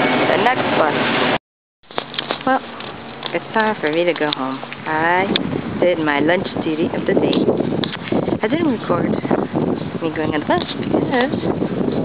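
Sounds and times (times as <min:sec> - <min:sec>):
loud roadside traffic: 0:00.0 - 0:12.0
woman's voice: 0:00.3 - 0:01.0, 0:02.4 - 0:02.7, 0:03.3 - 0:07.5, 0:08.4 - 0:09.4, 0:10.0 - 0:11.5.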